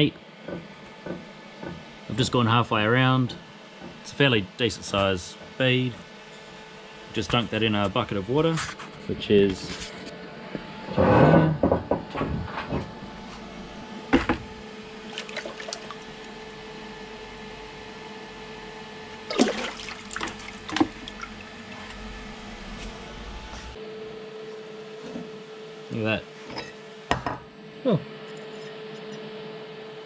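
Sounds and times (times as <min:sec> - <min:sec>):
water sloshing: 0:14.9 - 0:16.3, 0:19.2 - 0:23.0
splash into water: 0:15.1 - 0:16.0, 0:19.3 - 0:21.4.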